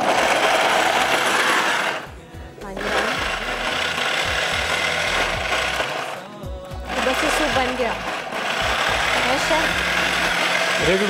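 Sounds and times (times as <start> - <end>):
blender chopping vegetables: 0.0 - 11.0.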